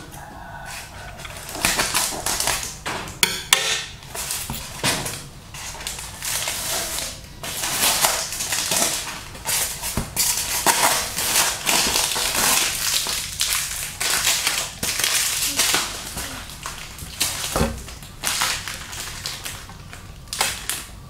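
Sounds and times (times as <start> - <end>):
packing tape ripping: 4.1 - 19.6.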